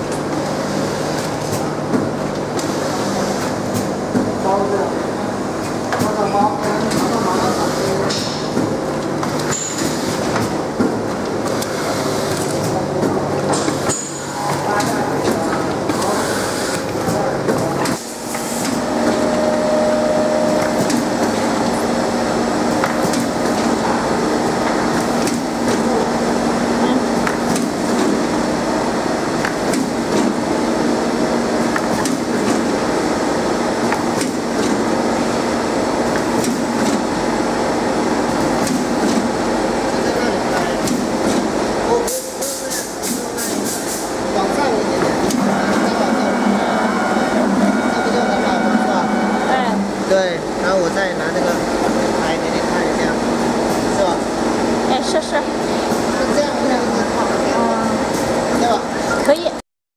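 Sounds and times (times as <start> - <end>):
machine humming: 0.0 - 59.5
machine clicks and clacks: 31.7 - 32.8, 33.8 - 34.9, 36.1 - 37.1, 38.3 - 39.3.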